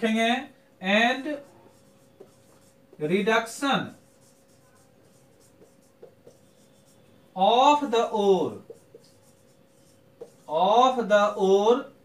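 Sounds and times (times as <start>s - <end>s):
marker pen writing on whiteboard: 0.9s - 11.6s.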